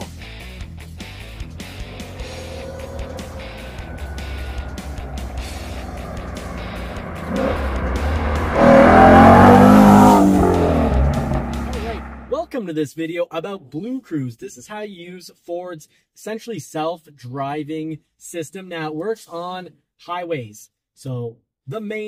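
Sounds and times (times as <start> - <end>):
car engine revving: 1.4 - 12.4.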